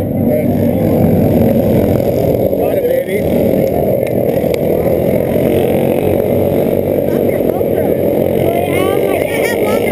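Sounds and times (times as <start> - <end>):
kart engines running: 0.0 - 9.9
voices: 0.0 - 9.9.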